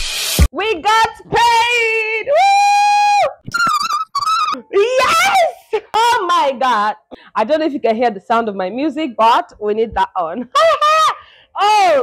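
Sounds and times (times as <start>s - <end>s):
woman shouting excitedly: 0.6s - 3.4s, 4.2s - 7.0s, 10.0s - 12.0s
laughter: 10.4s - 11.4s.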